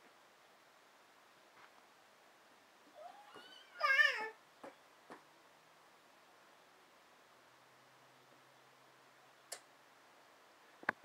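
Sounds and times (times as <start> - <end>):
baby squealing: 3.0 - 4.4.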